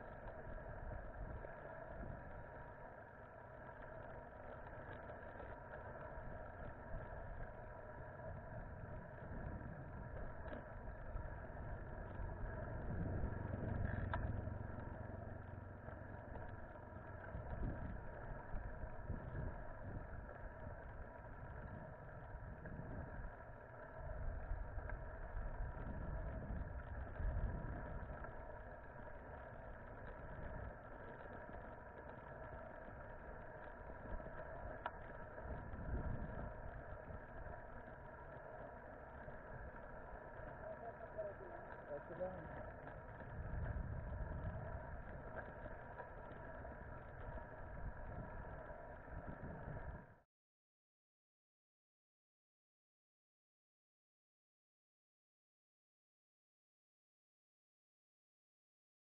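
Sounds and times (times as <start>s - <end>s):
steady mid-pitched hum: 0.0s - 50.2s
wind rumble on microphone: 0.0s - 50.2s.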